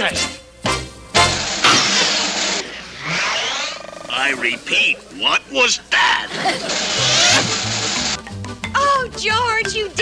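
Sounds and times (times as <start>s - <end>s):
loud hissing blast: 1.2s - 3.5s
warbling sweeping sound: 1.7s - 4.1s.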